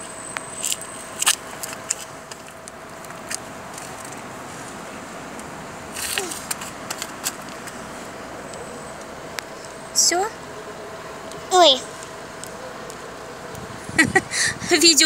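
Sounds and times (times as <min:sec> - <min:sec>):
distant traffic hum: 0:00.0 - 0:15.0.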